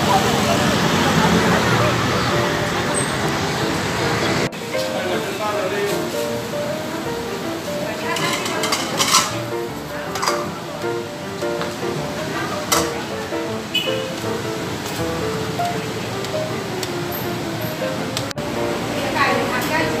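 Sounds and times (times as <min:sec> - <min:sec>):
light background music: 0:02.0 - 0:20.0
voices and clatter: 0:07.8 - 0:13.5, 0:18.2 - 0:20.0.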